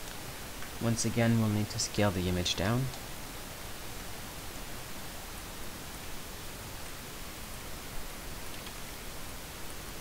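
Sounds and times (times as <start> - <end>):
microphone background hiss: 0.0 - 10.0
faint click: 8.5 - 8.8.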